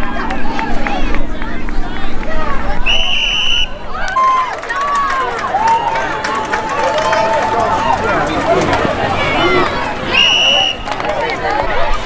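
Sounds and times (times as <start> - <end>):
referee's whistle: 2.9 - 3.8, 10.1 - 10.9
people shouting: 3.0 - 12.0.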